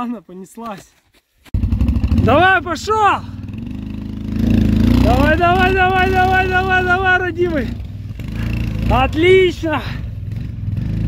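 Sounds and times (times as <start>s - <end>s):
quad bike engine under load: 1.6s - 11.0s.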